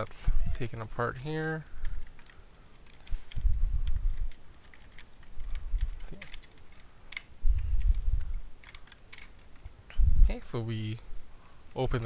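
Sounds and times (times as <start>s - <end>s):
plastic clicks and clacks: 0.5s - 9.7s.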